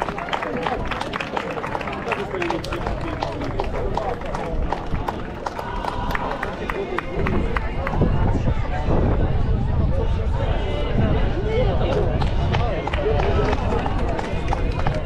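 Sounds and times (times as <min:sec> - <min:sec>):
crowd applauding: 0:00.0 - 0:08.1, 0:11.9 - 0:15.0
people talking: 0:00.0 - 0:15.0.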